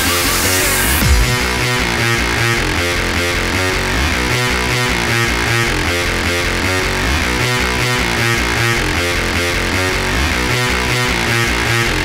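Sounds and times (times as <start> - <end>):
hard techno track: 0.0 - 12.0.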